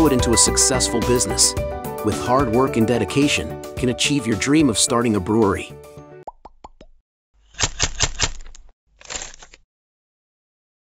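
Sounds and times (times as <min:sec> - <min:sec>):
sharp typewriter-like clicks: 0:07.6 - 0:09.6.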